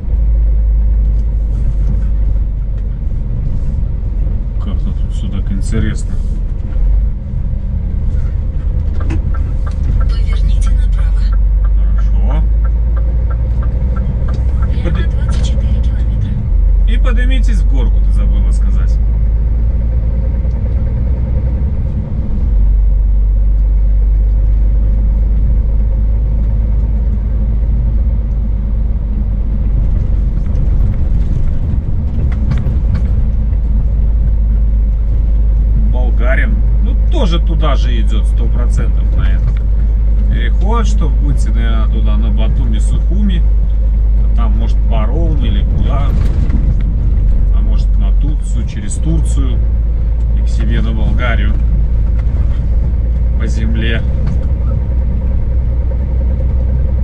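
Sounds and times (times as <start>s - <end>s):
truck engine and road noise: 0.0s - 57.0s.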